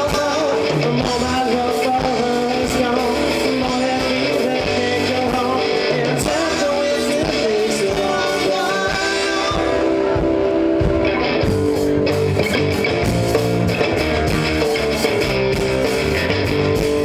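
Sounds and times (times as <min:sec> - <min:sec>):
live rock band playing: 0:00.0 - 0:17.0.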